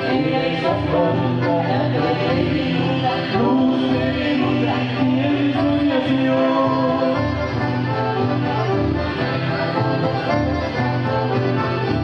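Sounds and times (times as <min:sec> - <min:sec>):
accordion melody: 0:00.0 - 0:12.0
guitar: 0:00.0 - 0:12.0
pulsing bass: 0:00.0 - 0:12.0.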